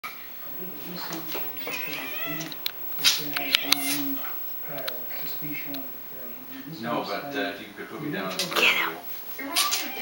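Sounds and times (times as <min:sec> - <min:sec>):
cat yowling: 0:01.6 - 0:02.5, 0:03.4 - 0:04.4, 0:08.6 - 0:10.0.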